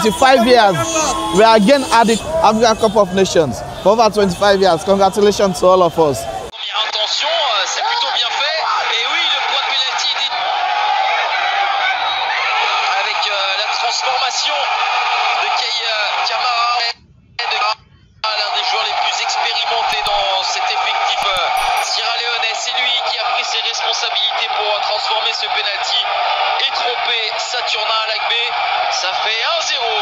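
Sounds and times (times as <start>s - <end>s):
voices of football commentary: 0.0s - 10.5s, 12.5s - 30.0s
dense crowd background: 0.0s - 16.8s, 17.4s - 30.0s.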